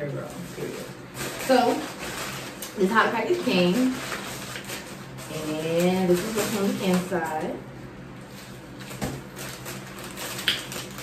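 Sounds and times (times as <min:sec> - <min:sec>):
plastic packaging rustling: 0:00.2 - 0:07.5, 0:08.2 - 0:11.0
sharp plastic crackle: 0:00.6 - 0:07.4, 0:08.4 - 0:11.0.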